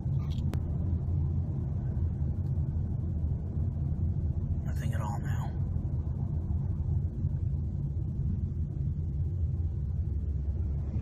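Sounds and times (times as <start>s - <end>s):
low rumble: 0.0s - 11.0s.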